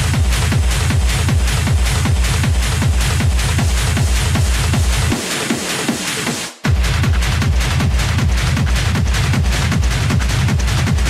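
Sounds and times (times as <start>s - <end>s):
bass: 0.0s - 11.0s
dense hi-hats and percussion: 0.0s - 11.0s
fast kick drum: 0.0s - 11.0s.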